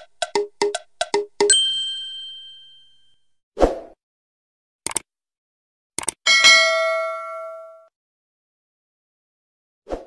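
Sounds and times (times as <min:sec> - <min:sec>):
notification bell ding: 0:01.5 - 0:03.2, 0:06.3 - 0:07.9
quick clicks: 0:04.8 - 0:05.1, 0:06.0 - 0:06.2.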